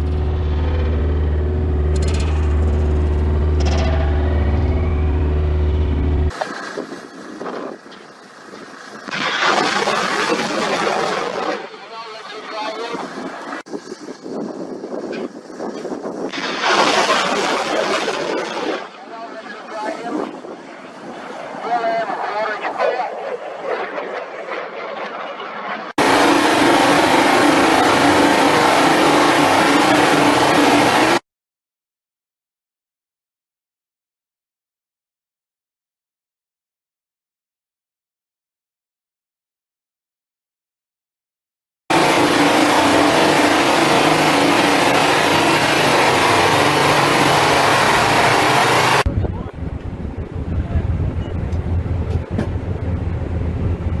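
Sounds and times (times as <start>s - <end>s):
low rumble: 0.0s - 7.6s, 46.0s - 54.0s
loud engine drone: 0.0s - 8.5s, 25.8s - 31.2s, 41.9s - 54.0s.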